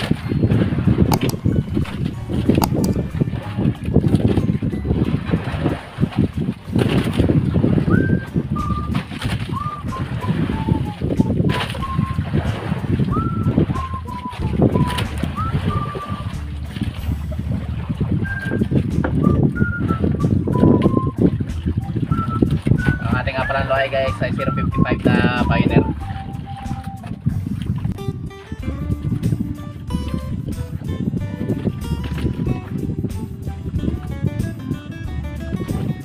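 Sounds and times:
wind buffeting microphone: 0.0 - 36.0
person whistling a slow tune: 7.8 - 16.6, 18.1 - 27.5.

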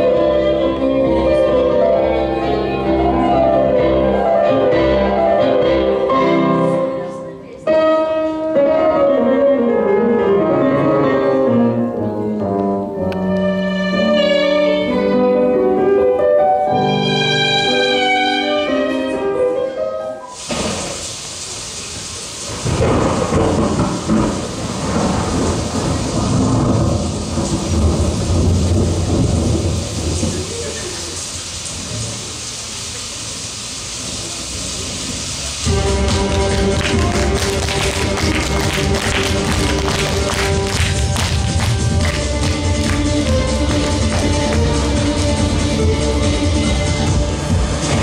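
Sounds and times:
rain hiss: 20.1 - 48.0
low thunder rolls: 22.5 - 30.8
music with steady beat: 35.7 - 48.0.

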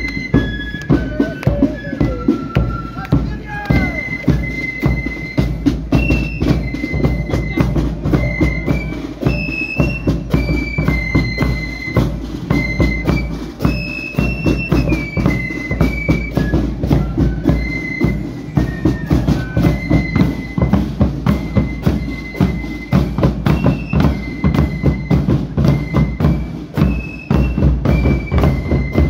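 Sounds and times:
flutes playing melody: 0.0 - 29.0
marching drums and cymbals: 0.0 - 29.0.

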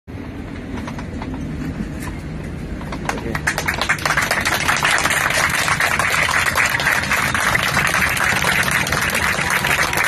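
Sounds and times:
airliner cabin rumble: 0.1 - 10.0.

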